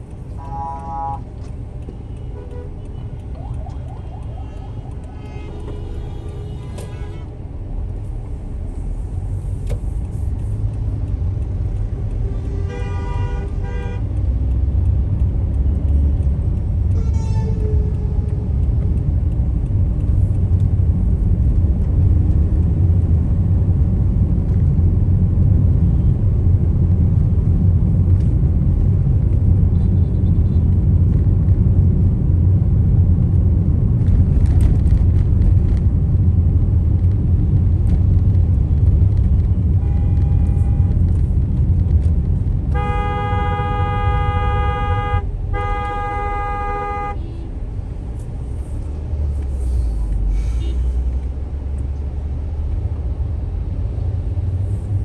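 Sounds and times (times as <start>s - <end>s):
road and engine rumble: 0.0s - 55.0s
vehicle horn honking: 0.4s - 1.2s, 5.2s - 7.3s, 39.8s - 40.9s, 42.7s - 47.4s.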